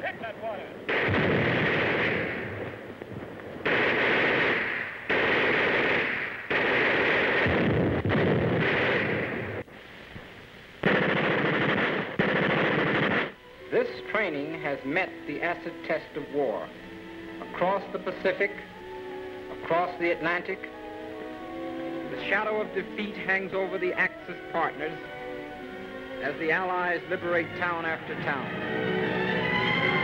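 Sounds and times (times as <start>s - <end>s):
film soundtrack music: 0.0s - 7.5s, 10.8s - 30.0s
machine-gun fire: 0.9s - 2.8s, 3.6s - 9.6s, 10.8s - 13.4s.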